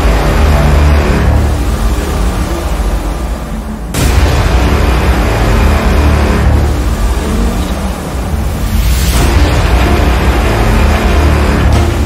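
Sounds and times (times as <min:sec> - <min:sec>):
deep bass rumble: 0:00.0 - 0:12.0.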